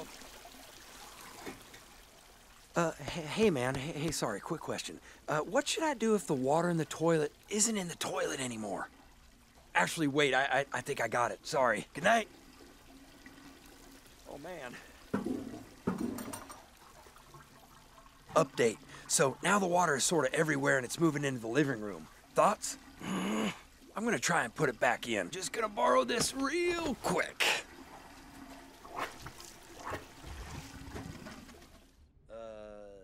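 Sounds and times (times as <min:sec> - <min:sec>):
water splashing: 0:00.0 - 0:32.0
soft knocks: 0:15.1 - 0:16.5.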